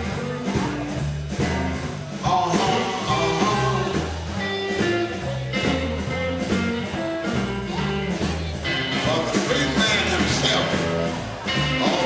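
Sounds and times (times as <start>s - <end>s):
bass and drums: 0.0s - 12.0s
electric guitar: 0.0s - 12.0s.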